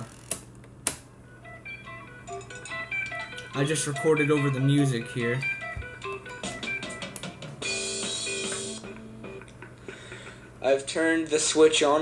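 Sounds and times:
cassette music through small speaker: 1.4s - 9.6s.

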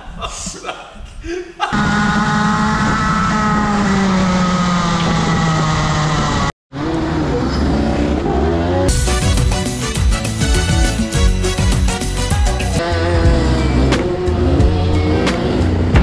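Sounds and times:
kart engine at high revs: 1.8s - 9.0s, 12.8s - 16.0s.

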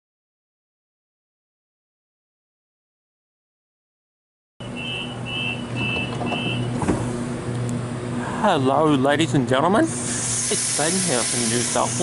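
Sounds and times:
door-closing warning beeps: 4.6s - 6.8s
electric train humming: 4.6s - 12.0s.

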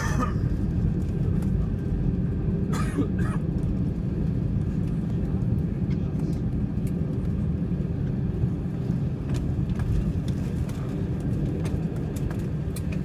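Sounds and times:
airliner cabin rumble: 0.0s - 13.0s.

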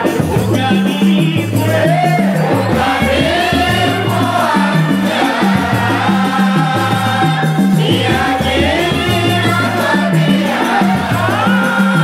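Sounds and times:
group singing chant-like melody: 0.0s - 12.0s
shaken percussion: 0.0s - 12.0s.

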